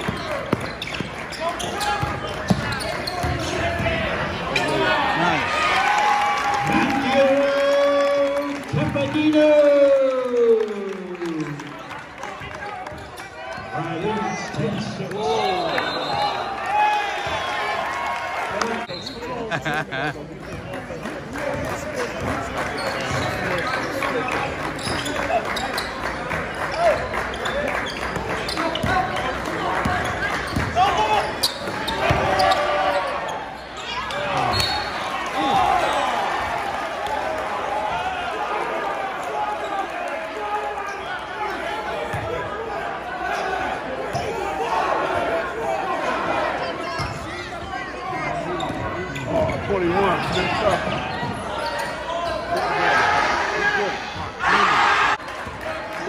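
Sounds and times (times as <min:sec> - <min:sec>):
spectators chattering: 0:00.0 - 0:56.0.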